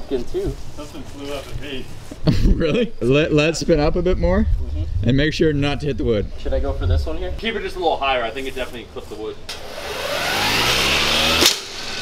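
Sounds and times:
electric motor whining: 9.5s - 12.0s
sharp crack of wooden post: 11.2s - 12.0s.

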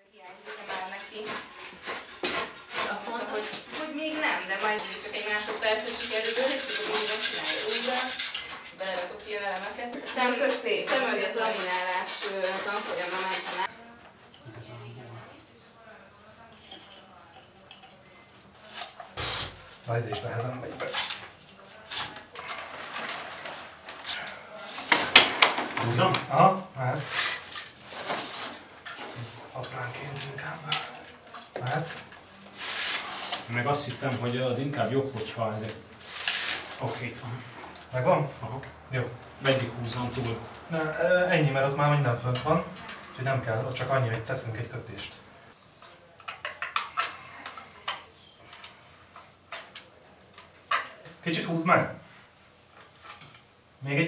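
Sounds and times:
cables scraping along plaster wall: 0.3s - 13.8s, 18.6s - 38.1s
hand scrapers scraping plaster: 0.4s - 13.7s.

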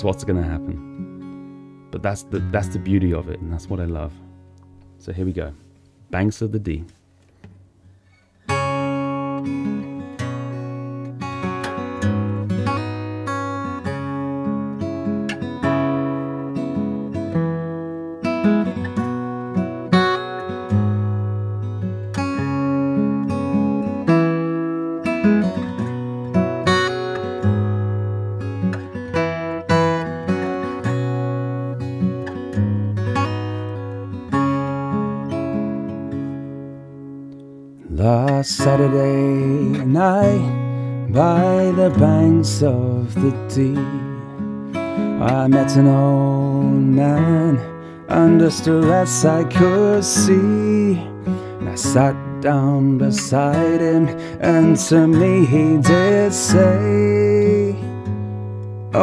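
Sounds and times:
fingerpicked acoustic guitar: 0.0s - 59.0s.

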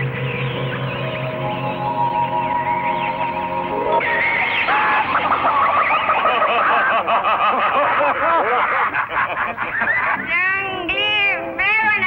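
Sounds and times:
men laughing: 4.0s - 10.4s.

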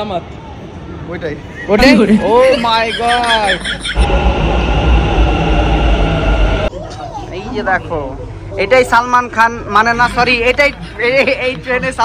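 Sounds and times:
train whine: 3.9s - 6.9s
metro train rumbling past: 4.0s - 7.2s.

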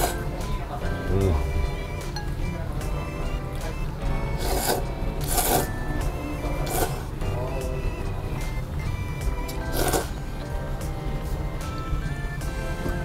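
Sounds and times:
background music: 0.0s - 13.0s
person slurping noodles: 4.4s - 5.8s, 6.6s - 7.1s, 9.6s - 10.2s.

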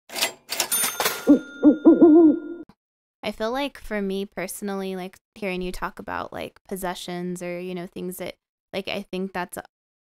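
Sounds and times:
high ringing tone: 0.8s - 2.6s.

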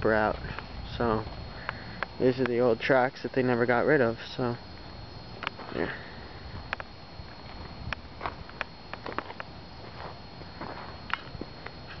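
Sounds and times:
footsteps on gravel and grass: 5.4s - 12.0s.

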